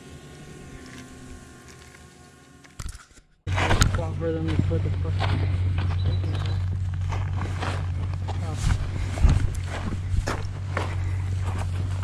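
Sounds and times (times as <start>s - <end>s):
steady low hum: 0.0s - 12.0s
footsteps on dirt and stones: 3.5s - 12.0s.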